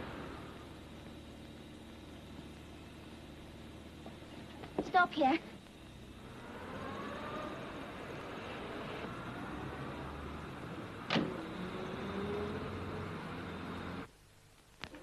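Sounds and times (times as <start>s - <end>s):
car engine revving: 5.9s - 14.1s.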